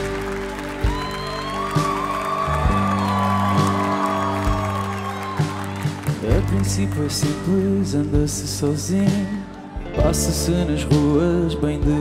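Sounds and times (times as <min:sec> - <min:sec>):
live band instrumental: 0:00.0 - 0:12.0.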